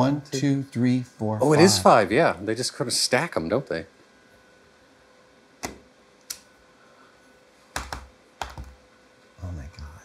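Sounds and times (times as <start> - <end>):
rubber stamp tapping on paper: 7.7 - 8.8.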